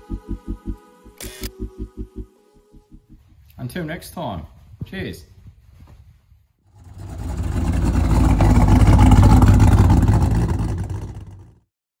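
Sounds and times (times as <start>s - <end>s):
loud engine rumble: 6.7s - 11.6s.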